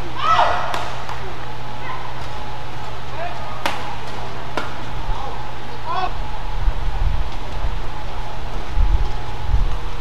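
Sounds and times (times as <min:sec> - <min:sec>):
racket striking shuttlecock: 0:00.4 - 0:01.3, 0:03.6 - 0:04.9.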